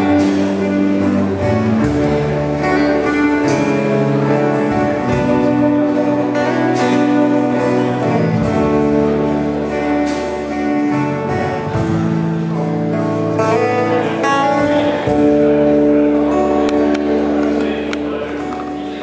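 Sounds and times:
acoustic guitars: 0:00.0 - 0:19.0
bass guitar: 0:00.0 - 0:19.0.

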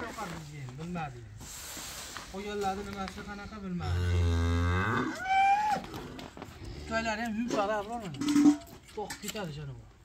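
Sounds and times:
cow mooing: 0:03.8 - 0:06.0.

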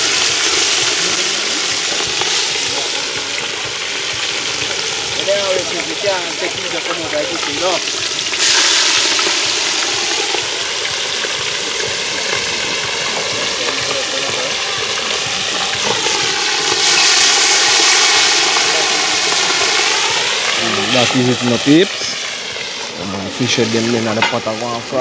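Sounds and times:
oil sizzling loudly: 0:00.0 - 0:25.0.

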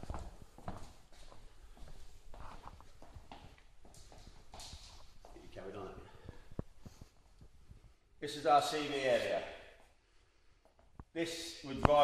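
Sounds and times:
footsteps on wooden floor: 0:00.0 - 0:05.4.

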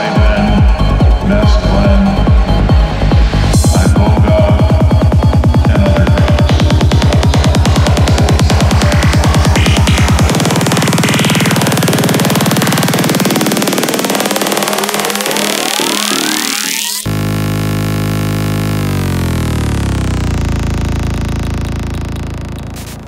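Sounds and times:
kick drum: 0:00.0 - 0:13.7
low synth drone gliding down: 0:00.0 - 0:23.0
synth build with rising sweeps: 0:04.7 - 0:23.0.

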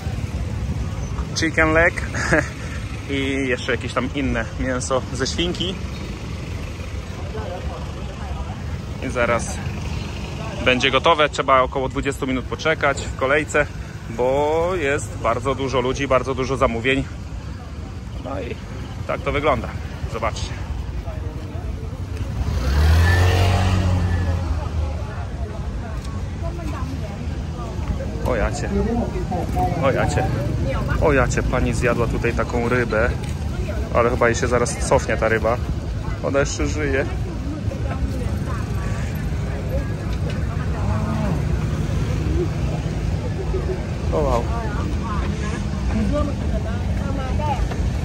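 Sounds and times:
street crowd voices: 0:00.0 - 0:48.0
small motorcycle passing: 0:21.2 - 0:48.0.

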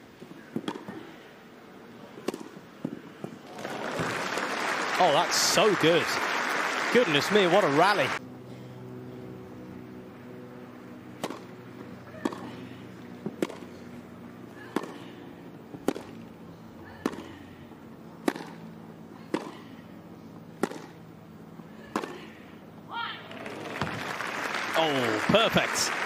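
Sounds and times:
racket hitting tennis ball: 0:00.6 - 0:01.0, 0:02.2 - 0:03.0, 0:11.1 - 0:13.9, 0:14.6 - 0:16.2, 0:16.8 - 0:17.6, 0:18.2 - 0:19.8, 0:20.5 - 0:21.0, 0:21.7 - 0:22.3
crowd voices: 0:03.5 - 0:08.2.

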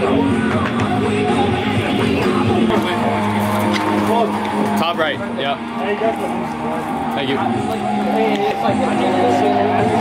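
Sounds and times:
spectators calling out: 0:00.0 - 0:10.0.

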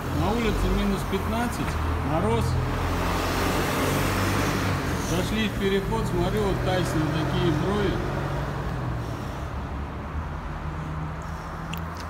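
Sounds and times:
road traffic rushing past: 0:00.0 - 0:12.0.

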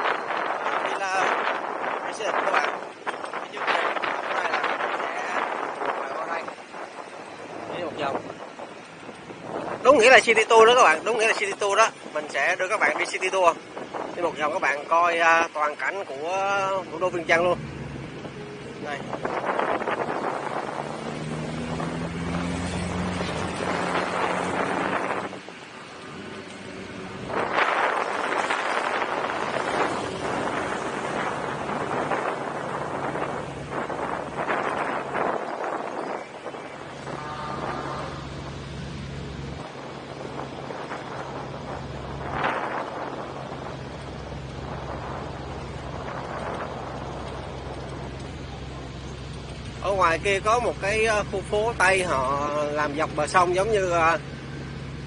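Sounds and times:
motorcycle engine hum: 0:00.0 - 0:55.0
wind noise on microphone: 0:00.0 - 0:55.0.

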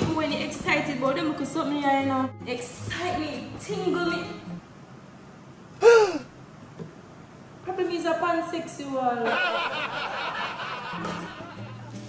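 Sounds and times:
woman gasping in surprise: 0:05.8 - 0:06.3.

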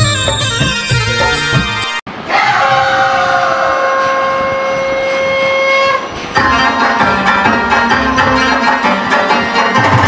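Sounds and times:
song with drums: 0:00.0 - 0:02.0, 0:06.2 - 0:10.0.

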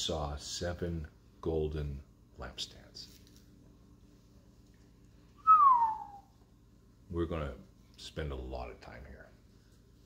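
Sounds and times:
whistled note sliding down: 0:05.4 - 0:06.3.

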